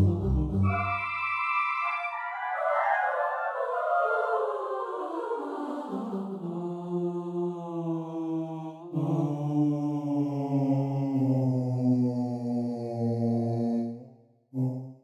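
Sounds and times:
low sustained drone: 0.6s - 4.3s.

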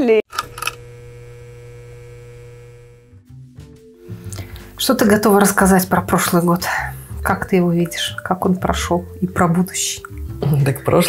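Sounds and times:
electrical mains hum: 0.3s - 3.1s.

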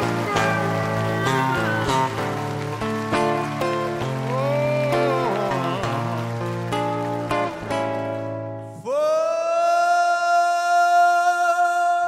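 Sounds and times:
man singing a long high note: 8.7s - 12.0s.

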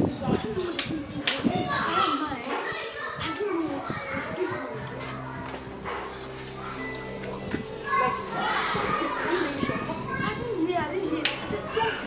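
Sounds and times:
young voices speaking heatedly: 0.0s - 12.0s
background music: 3.3s - 12.0s.

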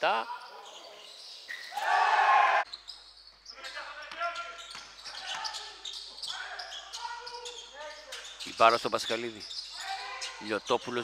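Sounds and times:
voices echoing in hall: 3.4s - 11.0s.

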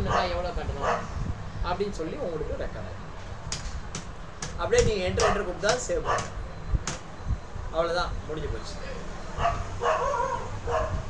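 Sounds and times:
dog yipping: 0.0s - 1.1s, 5.2s - 5.4s, 6.0s - 6.3s, 9.4s - 11.0s.

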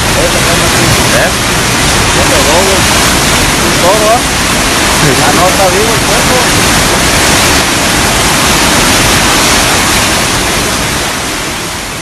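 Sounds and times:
floodwater rushing in river: 0.0s - 12.0s.

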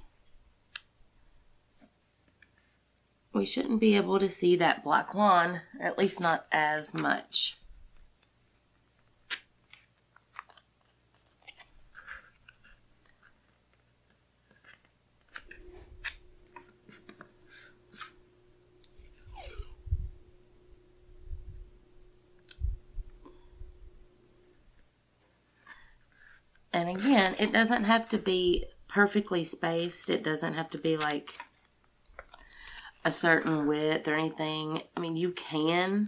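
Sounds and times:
faint steady hum: 0.0s - 36.0s
paper handling: 9.2s - 18.2s.

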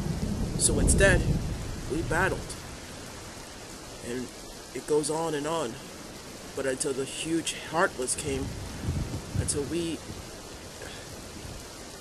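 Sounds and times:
steady rain: 0.0s - 12.0s.

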